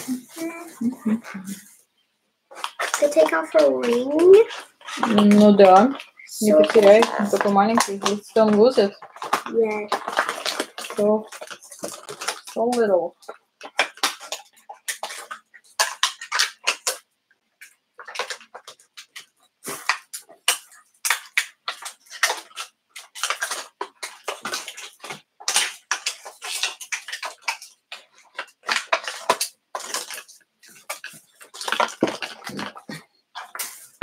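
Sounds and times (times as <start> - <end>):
plastic wrapping crinkling: 2.5 - 34.0.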